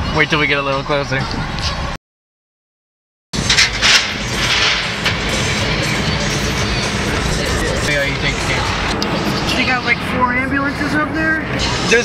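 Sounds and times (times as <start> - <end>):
music playing: 3.4 - 10.2
car road and engine noise: 3.4 - 12.0.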